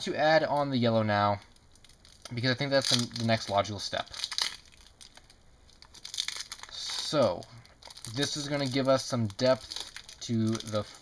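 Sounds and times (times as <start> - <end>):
crinkling and rustling handling: 0.0 - 11.0.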